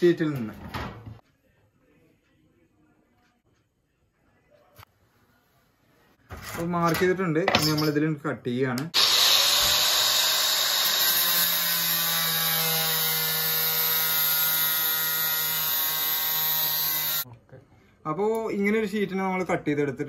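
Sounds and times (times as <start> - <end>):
angle grinder cutting steel sheet: 9.0 - 17.2.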